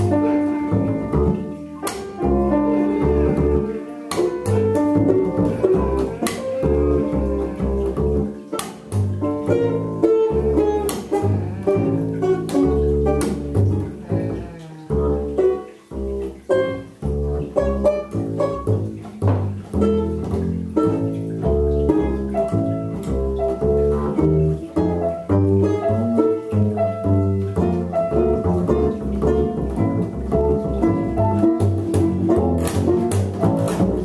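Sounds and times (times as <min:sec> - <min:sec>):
bass notes: 0:00.0 - 0:34.0
plucked banjo notes: 0:00.0 - 0:34.0.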